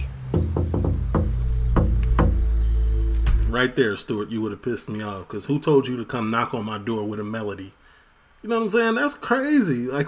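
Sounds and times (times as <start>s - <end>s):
low background music: 0.0s - 4.3s
rhythmic knocking on door: 0.2s - 2.6s.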